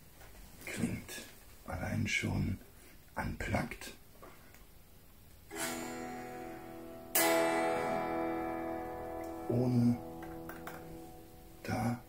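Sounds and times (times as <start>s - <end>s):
unplugged electric guitar strumming: 5.5s - 12.0s.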